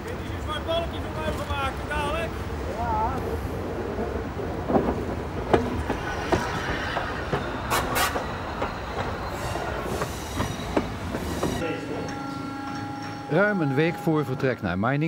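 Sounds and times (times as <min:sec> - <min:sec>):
steam locomotive rolling on rails: 0:00.0 - 0:15.0.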